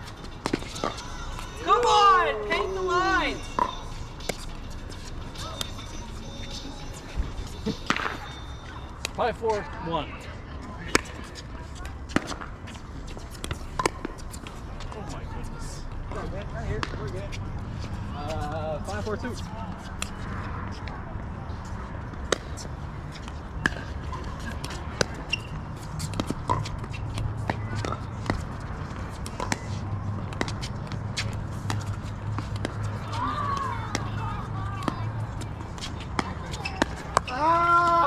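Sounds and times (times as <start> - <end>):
faint voices: 32.8 - 38.0.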